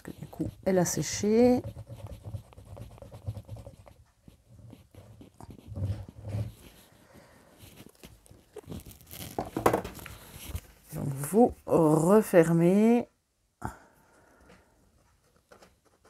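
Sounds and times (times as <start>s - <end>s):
paper rustling: 0.1s - 10.8s
glue squeezed from plastic bottle: 8.0s - 9.6s.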